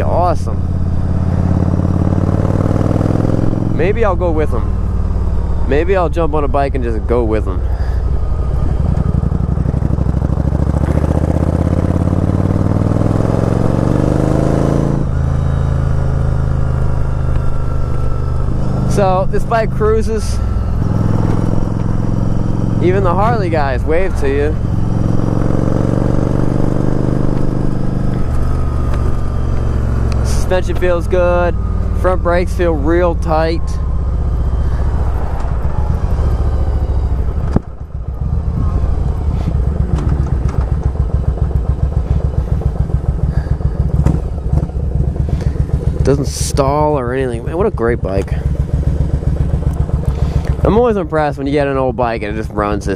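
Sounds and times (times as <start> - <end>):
motorcycle engine cruising: 0.0 - 52.9.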